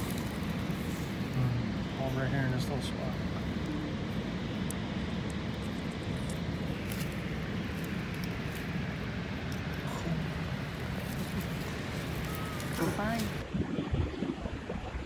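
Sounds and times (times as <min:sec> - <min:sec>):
faint hum: 0:00.0 - 0:15.0
steady low rumble: 0:00.0 - 0:15.0.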